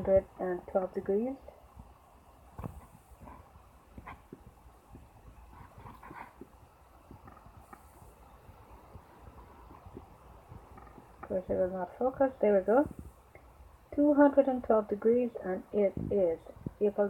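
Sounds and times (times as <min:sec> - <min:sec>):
faint room noise: 0:00.0 - 0:17.0.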